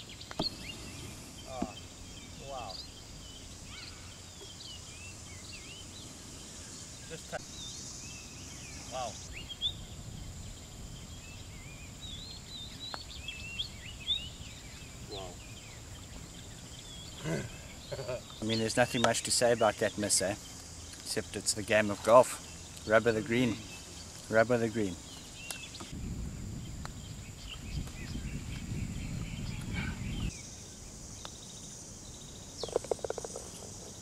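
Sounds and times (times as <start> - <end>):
small birds chirping: 0.0 - 34.0.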